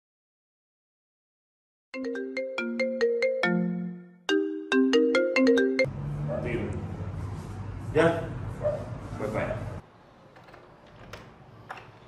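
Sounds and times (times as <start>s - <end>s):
phone ringtone melody: 2.0s - 5.9s.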